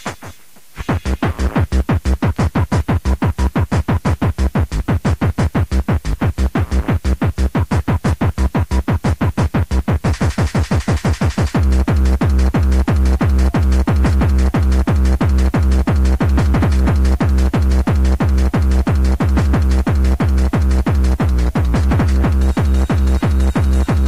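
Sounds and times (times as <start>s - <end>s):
heavy bass line: 0.0s - 24.0s
kick drum steady beat: 0.0s - 24.0s.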